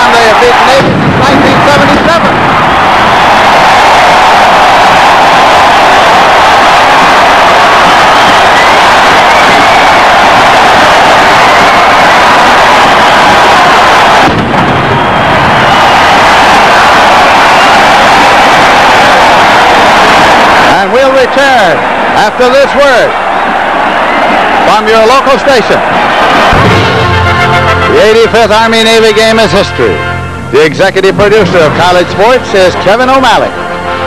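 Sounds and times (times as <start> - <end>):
stadium crowd cheering: 0.0 - 34.0.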